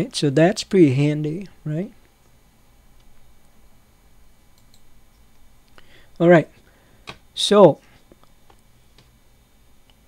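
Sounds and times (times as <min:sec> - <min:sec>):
faint mouse clicks: 0:04.5 - 0:05.8.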